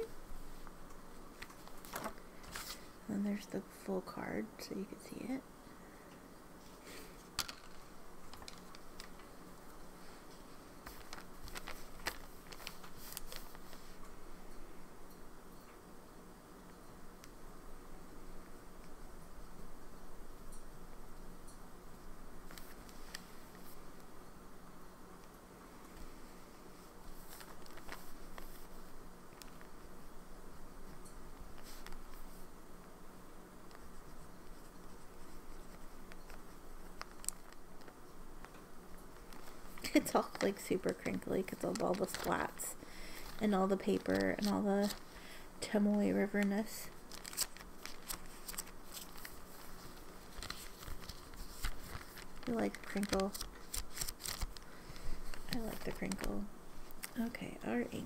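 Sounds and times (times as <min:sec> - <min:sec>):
faint steady hum: 0:00.0 - 0:58.0
paper pages rustling: 0:01.4 - 0:02.9, 0:10.8 - 0:14.0, 0:27.0 - 0:29.8, 0:31.5 - 0:32.5, 0:33.7 - 0:38.0, 0:39.2 - 0:57.0.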